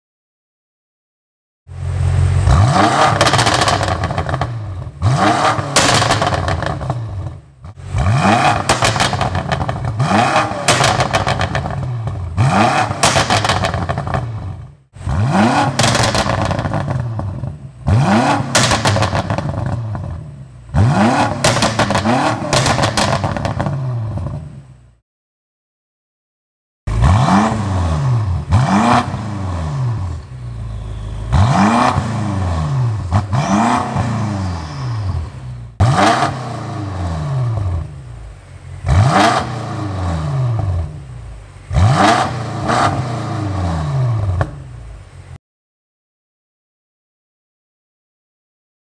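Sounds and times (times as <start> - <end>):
car engine revving: 1.7 - 24.9, 26.9 - 45.4
exhaust crackles pops and bangs: 5.7 - 7.0, 8.6 - 9.9, 10.6 - 12.2, 13.0 - 14.2, 18.5 - 20.1, 21.4 - 24.4.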